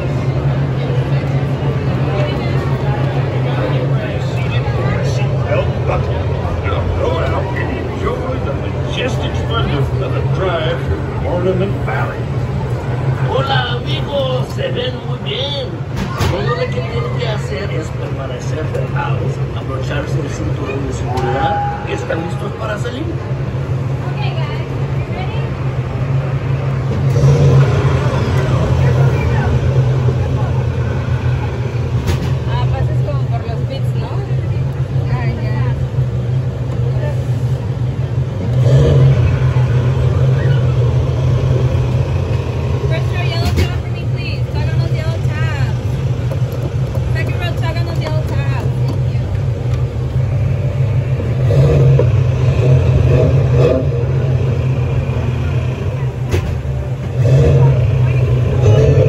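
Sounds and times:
ride car rumbling along track: 0.0 - 59.0.

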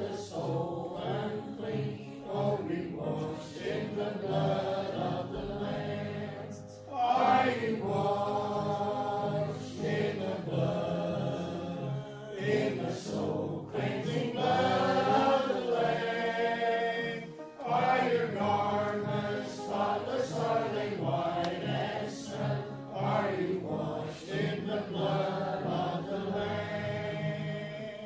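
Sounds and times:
congregation singing a hymn: 0.0 - 28.0.

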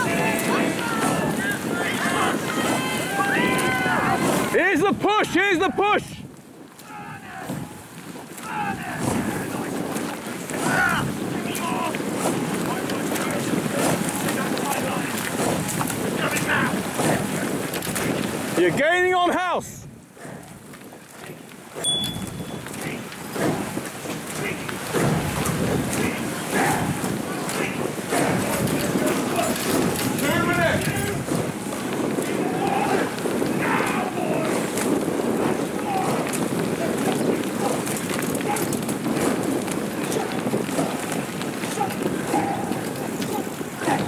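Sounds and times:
distant shouts of encouragement: 0.0 - 6.1, 32.4 - 34.6, 41.7 - 42.8
people shouting: 0.0 - 6.1, 6.8 - 7.8, 8.4 - 9.6, 10.5 - 12.0, 26.0 - 31.3, 32.1 - 39.3, 40.0 - 44.0
steady rushing noise: 0.0 - 44.0
wind noise on microphone: 0.0 - 44.0
short high beep: 21.8 - 22.7.

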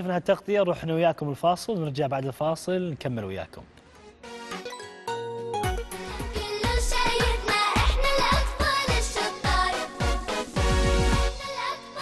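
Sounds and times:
held synth chord: 4.2 - 6.7.

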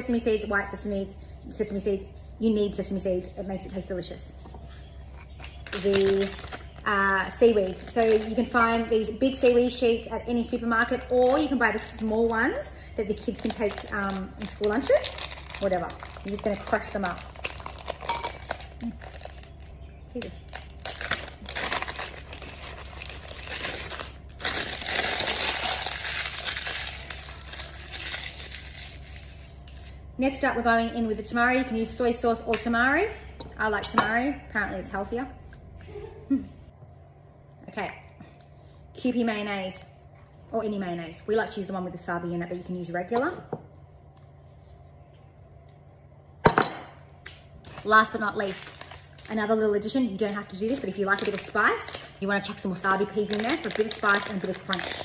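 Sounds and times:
seaweed sheets crackling: 5.6 - 8.6, 10.7 - 12.6, 13.2 - 29.9, 47.6 - 55.0.

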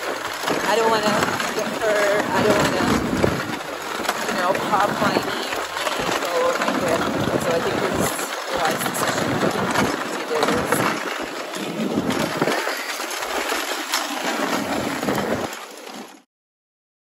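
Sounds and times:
wind and snow rushing: 0.0 - 16.1
scattered clicks and knocks: 0.0 - 16.2.

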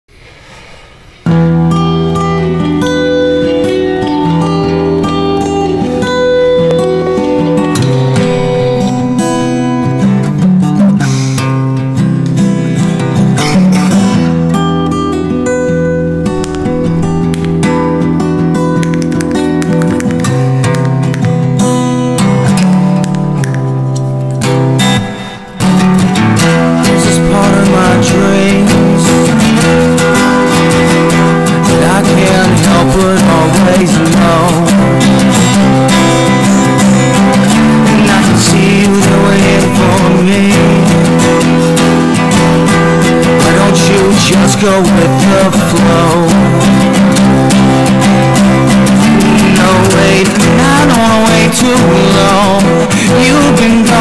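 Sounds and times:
instrumental music with held chords: 1.2 - 54.0.

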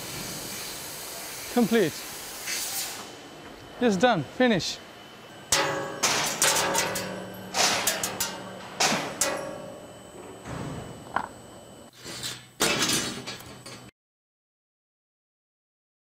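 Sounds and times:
steel sheet clanking on metal slats: 5.5 - 9.8.

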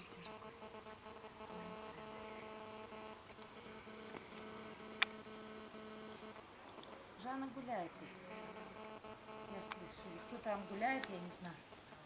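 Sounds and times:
faint buzzing hum: 0.0 - 12.0.

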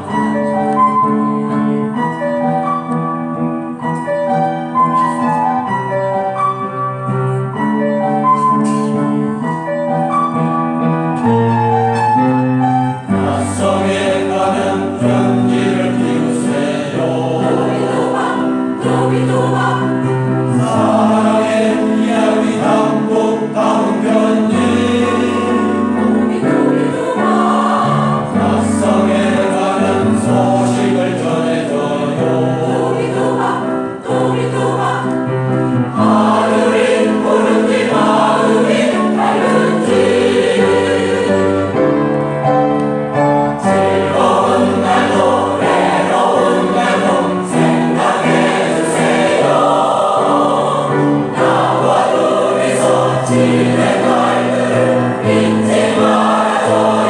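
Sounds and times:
mixed choir singing: 0.0 - 2.8, 12.8 - 42.0, 43.6 - 57.0.

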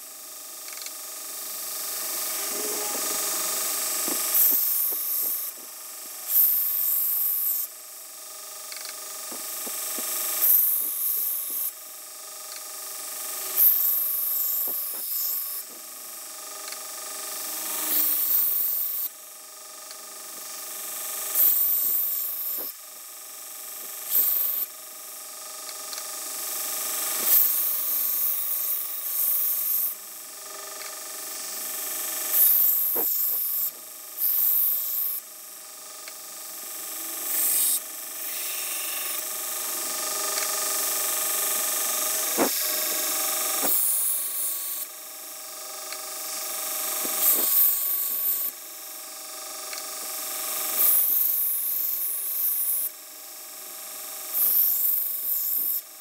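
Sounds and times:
belt grinder humming: 0.8 - 7.7, 8.7 - 11.8, 13.4 - 16.0, 17.4 - 19.2, 21.2 - 22.8, 23.8 - 24.7, 25.6 - 35.3, 36.0 - 45.0, 45.8 - 48.6
blade grinding on abrasive belt: 1.7 - 5.7, 17.4 - 19.2, 21.2 - 22.8, 23.8 - 24.7, 26.9 - 30.0, 30.6 - 35.3, 36.8 - 45.0, 45.9 - 48.6.

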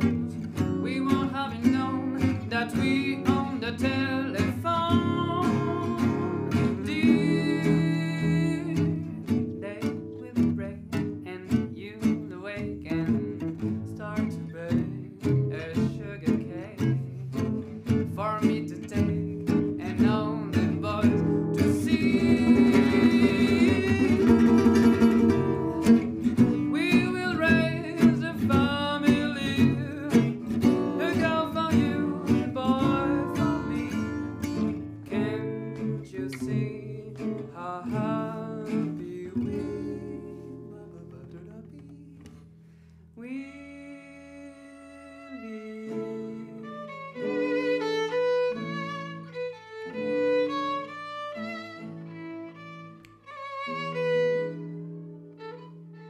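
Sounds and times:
acoustic guitar strumming chords: 0.0 - 42.9
man singing: 0.7 - 17.0, 18.2 - 42.3, 43.2 - 47.7.

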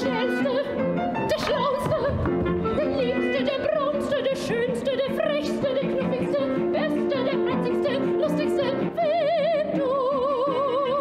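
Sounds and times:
woman singing operatically: 0.0 - 11.0.

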